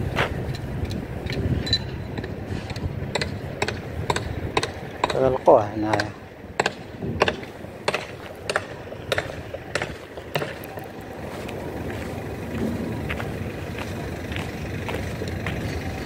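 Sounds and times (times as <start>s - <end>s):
footsteps on gravel: 0.0s - 0.6s, 7.4s - 16.0s
low rumble: 6.9s - 16.0s.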